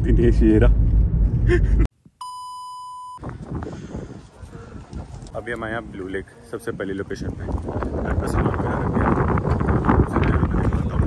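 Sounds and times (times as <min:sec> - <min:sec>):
censor bleep tone: 0:02.2 - 0:03.2
low outdoor background noise: 0:04.0 - 0:09.9.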